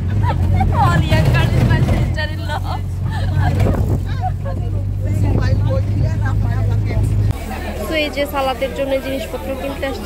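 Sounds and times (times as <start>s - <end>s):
market chatter: 0.0s - 10.0s
road noise: 0.0s - 10.0s
vehicle engine rumble: 0.0s - 10.0s
voices: 0.0s - 10.0s.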